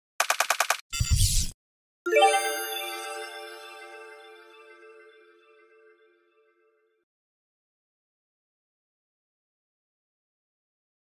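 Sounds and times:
rapid sharp clicks: 0:00.2 - 0:00.8.

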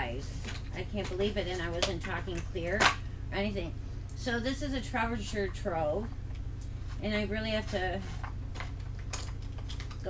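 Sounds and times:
makeup items clicking and clattering: 0:08.5 - 0:10.0.

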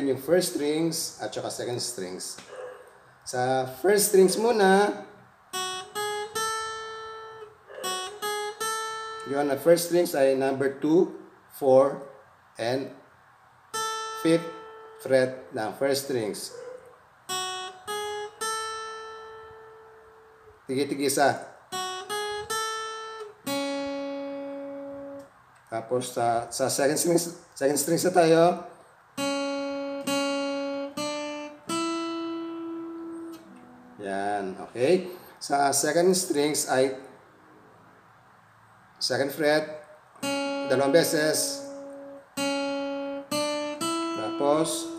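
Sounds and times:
acoustic guitar notes: 0:00.0 - 0:44.9.

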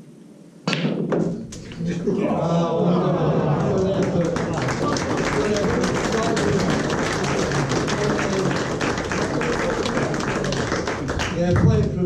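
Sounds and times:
murmur of voices: 0:01.8 - 0:12.0
audience clapping: 0:03.2 - 0:12.0.

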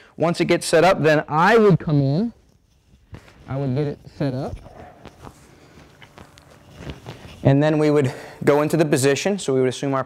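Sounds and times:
soft taps and rustles: 0:04.5 - 0:07.4.

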